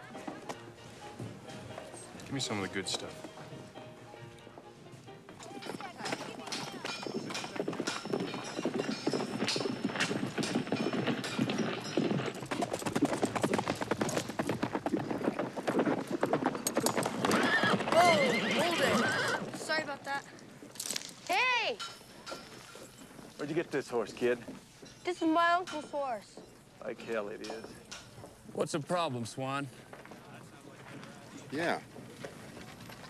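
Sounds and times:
hoofbeats on packed dirt: 0.0 - 33.0
horses whinnying: 14.2 - 19.7.

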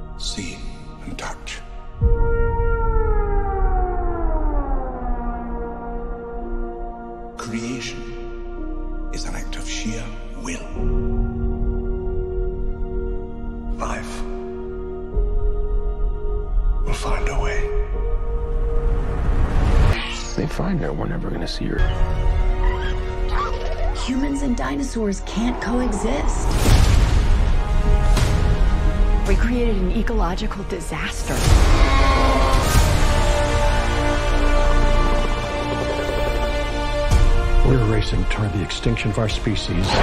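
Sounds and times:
film score low drone: 0.0 - 40.0
deep rumble: 23.9 - 38.6.

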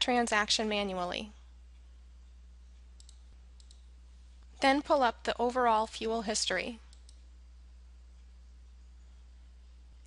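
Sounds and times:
computer mouse clicks: 3.0 - 3.9, 6.8 - 7.3.

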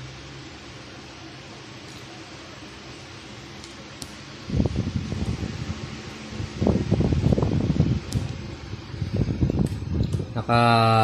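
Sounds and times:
cooling fan whirring: 0.0 - 11.0.

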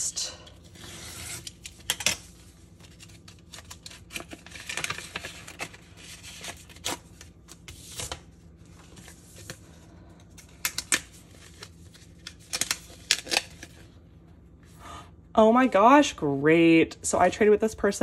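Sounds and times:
paper rustling and crinkling: 0.6 - 13.9.

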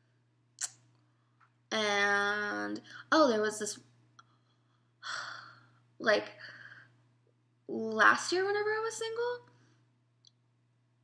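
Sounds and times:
woman sighing: 5.0 - 5.7.

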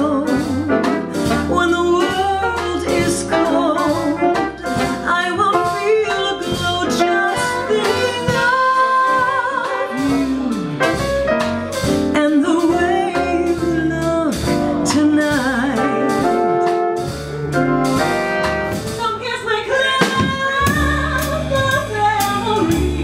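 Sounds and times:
piano: 0.0 - 23.0
upright double bass: 0.0 - 23.0
woman singing jazz: 0.0 - 23.0.

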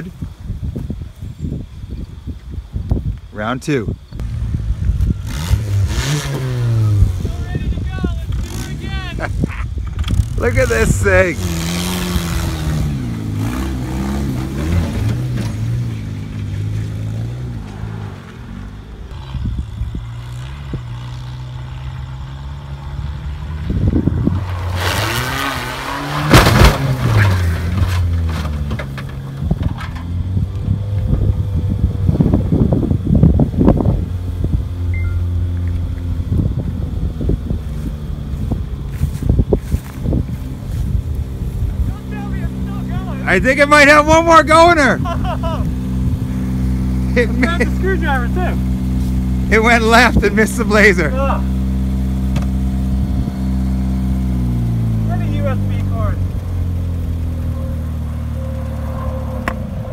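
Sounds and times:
car engine revving: 4.2 - 9.4, 10.0 - 59.9
car crash: 24.5 - 30.1.

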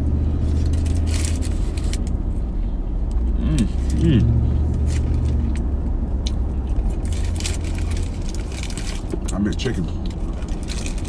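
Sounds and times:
paper wrapper crinkling: 0.5 - 2.1, 6.9 - 9.2, 10.3 - 11.0
man humming mm: 3.3 - 4.4.

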